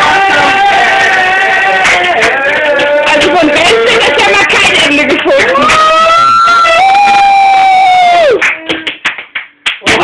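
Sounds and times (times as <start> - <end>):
people shouting: 0.0 - 4.2, 5.4 - 8.4
people clapping: 0.0 - 10.0.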